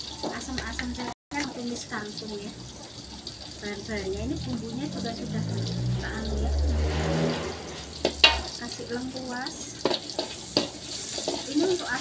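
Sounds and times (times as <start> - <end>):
paste sizzling in oil: 0.0 - 12.0
steady low rumble: 3.8 - 9.0
metal spatula stirring in wok: 6.8 - 9.0, 9.7 - 12.0.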